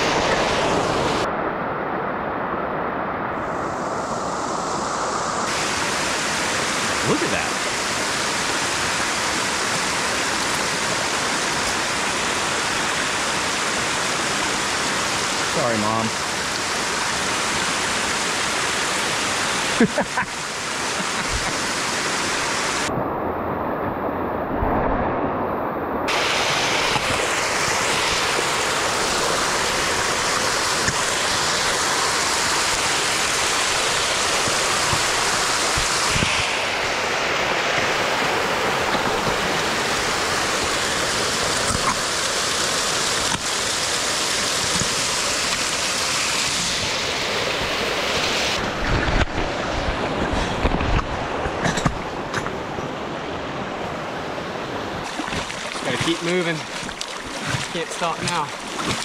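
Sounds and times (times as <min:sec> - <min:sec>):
waterfall rushing over rocks: 0:00.0 - 0:24.4, 0:25.4 - 0:59.0.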